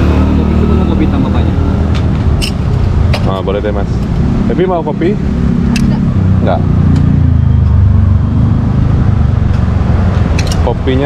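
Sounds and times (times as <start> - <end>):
passing vehicle engine rumble: 0.0 - 11.0.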